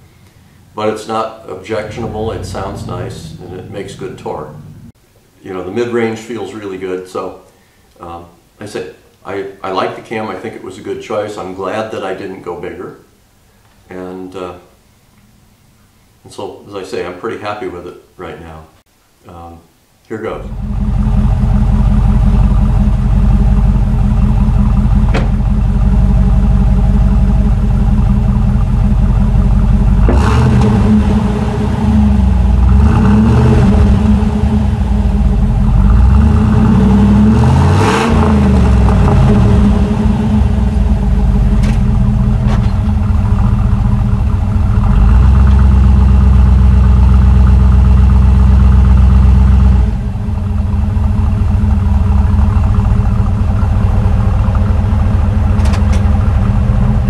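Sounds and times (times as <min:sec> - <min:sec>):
car engine idling and revving: 0:00.0 - 0:00.9, 0:01.6 - 0:05.0, 0:20.5 - 0:57.0.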